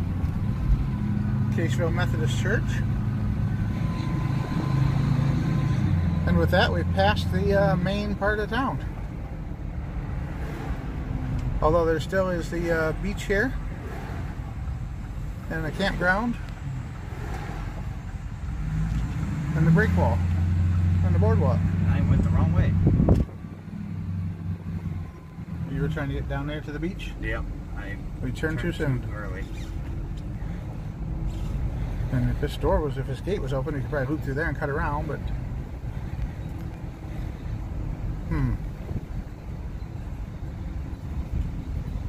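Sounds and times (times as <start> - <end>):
car engine and road drone: 0.0 - 42.0.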